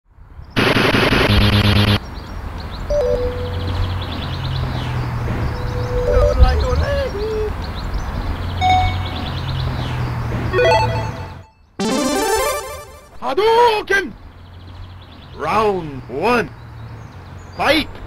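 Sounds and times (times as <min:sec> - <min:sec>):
harsh sound effect burst: 0:00.6 - 0:02.0, 0:10.6 - 0:13.2
sliding synth notes: 0:10.6 - 0:13.2.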